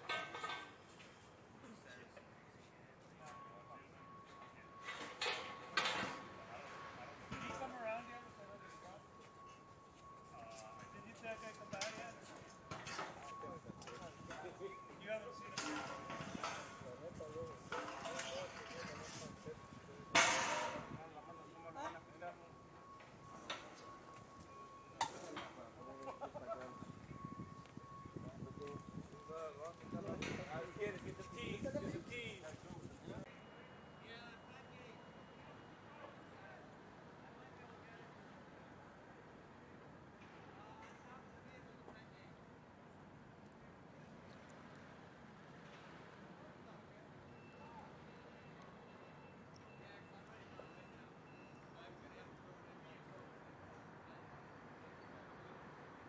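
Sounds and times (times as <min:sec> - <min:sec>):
truck reversing alarm beep: 0:00.0 - 0:43.1, 0:44.9 - 0:56.0
distant voices: 0:00.0 - 0:56.0
faint street ambience: 0:00.0 - 0:56.0.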